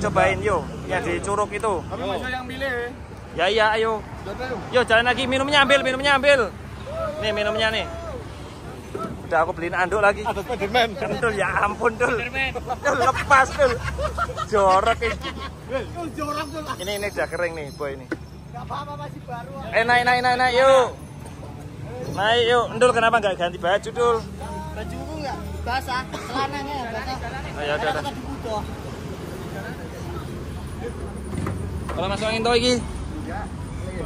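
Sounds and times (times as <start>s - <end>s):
young men chattering: 0.0s - 34.0s.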